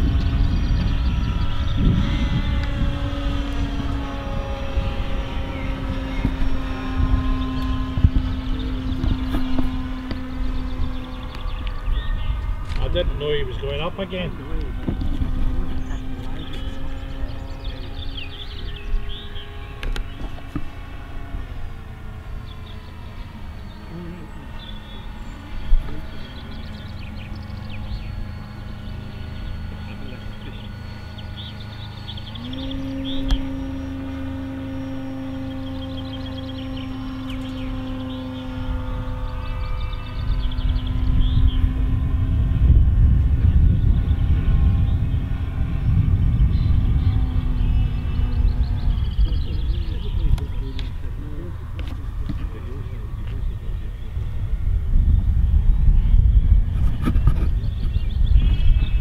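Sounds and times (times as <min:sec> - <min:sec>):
model aircraft motor whining: 0:00.0 - 0:59.0
wind rumble on microphone: 0:00.0 - 0:59.0.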